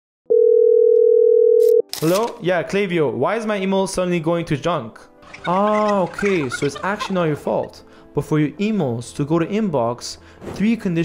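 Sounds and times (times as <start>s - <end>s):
telephone calling beep: 0.3s - 1.9s.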